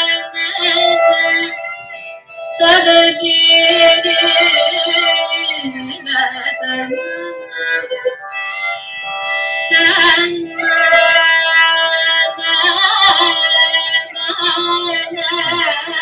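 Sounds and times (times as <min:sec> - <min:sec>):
woman singing gliding notes: 0:00.0 - 0:01.8, 0:02.6 - 0:08.4, 0:09.6 - 0:16.0
violin: 0:00.0 - 0:16.0.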